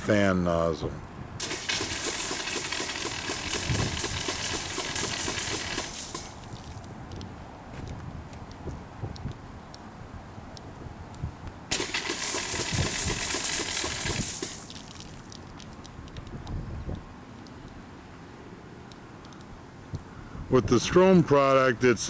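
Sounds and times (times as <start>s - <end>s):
foam sprayer hissing: 1.4s - 6.4s, 11.7s - 14.8s.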